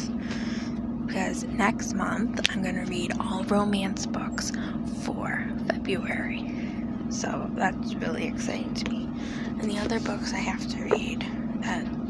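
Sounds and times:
steady low hum: 0.0 - 12.0
woman speaking softly: 1.1 - 6.5, 7.1 - 12.0.

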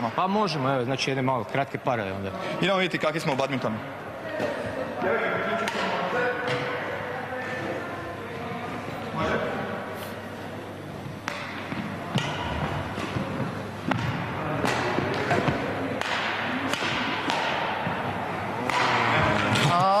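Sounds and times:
voices in background: 0.0 - 20.0
rackets hitting shuttlecock: 5.6 - 6.8, 11.2 - 19.8.

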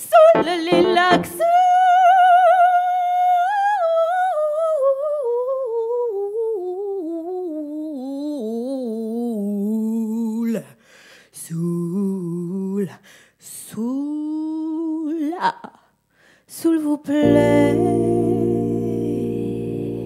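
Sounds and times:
woman singing wordlessly: 0.0 - 10.7, 11.4 - 15.9, 16.5 - 20.0.

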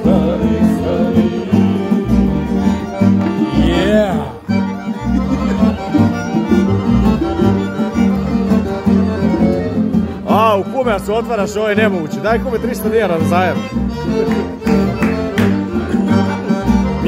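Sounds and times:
pulsing bass accompaniment: 0.0 - 17.0
violin playing: 0.0 - 17.0.

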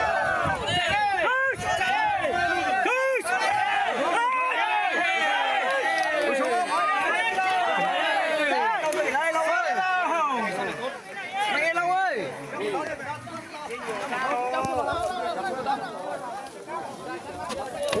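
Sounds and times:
crowd of men shouting: 0.0 - 16.3.

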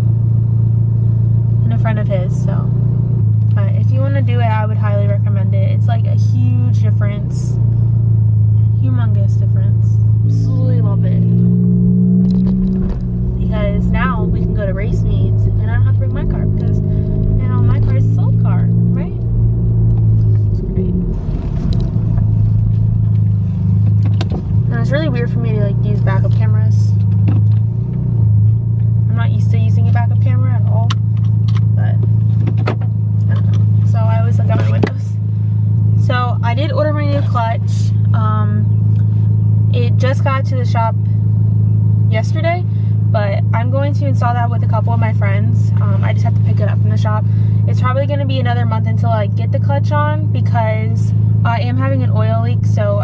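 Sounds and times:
car engine idling: 0.0 - 53.0.

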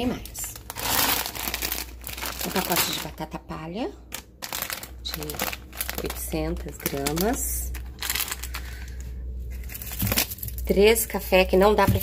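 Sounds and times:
plastic bag crinkling: 0.0 - 3.4, 4.0 - 11.0.

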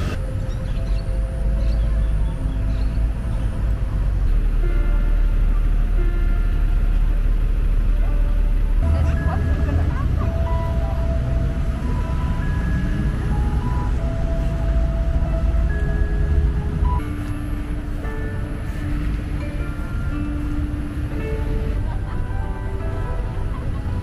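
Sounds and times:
musical swings sounding notes: 0.0 - 24.0
steady low rumble: 0.0 - 24.0.

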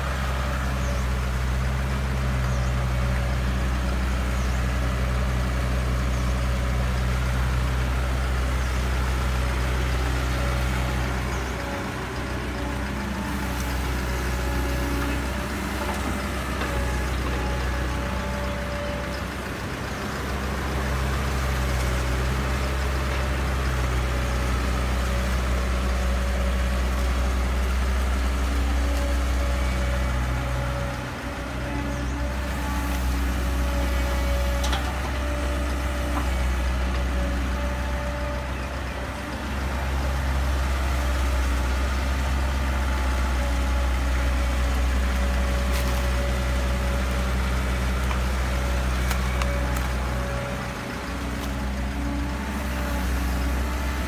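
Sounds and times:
excavator diesel engine under load: 0.0 - 54.0.

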